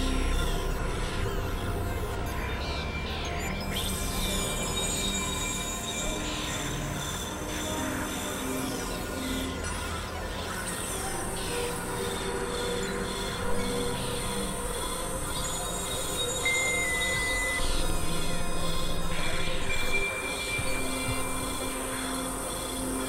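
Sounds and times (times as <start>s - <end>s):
squealing synth glides: 0.0s - 23.0s
synthesizer drone: 0.0s - 23.0s.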